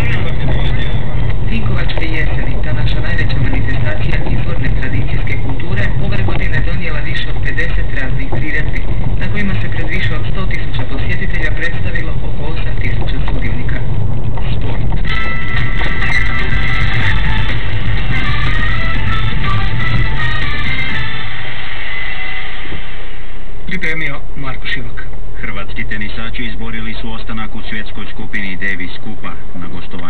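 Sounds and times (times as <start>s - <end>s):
car radio music: 0.0s - 21.6s
car driving rumble: 0.0s - 30.0s.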